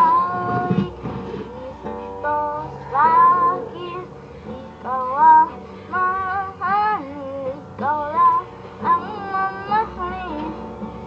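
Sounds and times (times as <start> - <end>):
boy singing: 0.0 - 10.7
acoustic guitar: 0.0 - 11.0.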